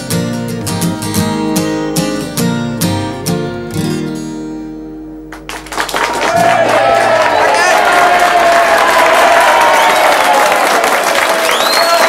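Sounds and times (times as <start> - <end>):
acoustic guitar chord ringing: 0.0 - 5.7
audience applause: 5.3 - 12.0
cheering voices: 6.0 - 12.0.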